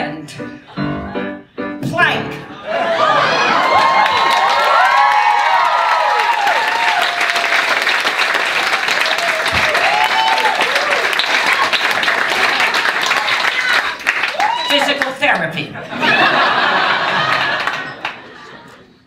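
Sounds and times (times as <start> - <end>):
people whooping: 2.7 - 8.0, 8.6 - 15.0
audience applauding: 2.7 - 18.9.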